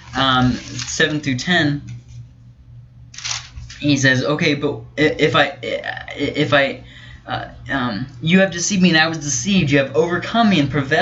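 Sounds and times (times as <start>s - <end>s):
man speaking: 0.0s - 1.9s, 3.8s - 11.0s
low steady hum: 0.0s - 11.0s.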